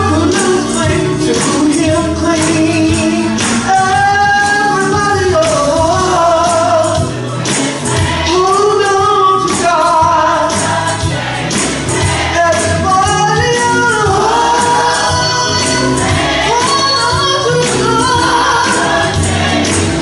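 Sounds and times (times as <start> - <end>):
bass line: 0.0 - 20.0
gospel choir singing: 0.0 - 20.0
steady beat: 4.9 - 20.0.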